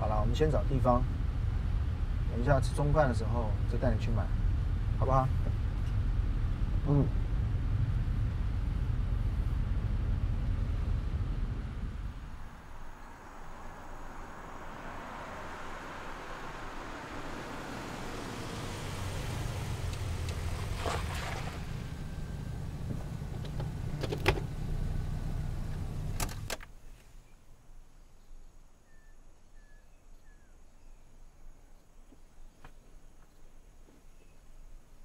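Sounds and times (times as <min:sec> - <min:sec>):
car engine rumble: 0:00.0 - 0:27.4
sharp clicks and knocks: 0:22.9 - 0:24.5
faint chirps: 0:26.8 - 0:32.0.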